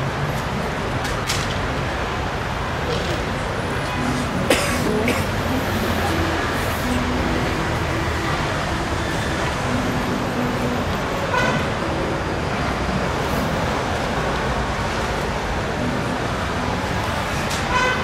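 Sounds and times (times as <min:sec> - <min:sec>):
road traffic noise: 0:00.0 - 0:18.0
car horn toot: 0:11.2 - 0:11.8, 0:17.6 - 0:18.0.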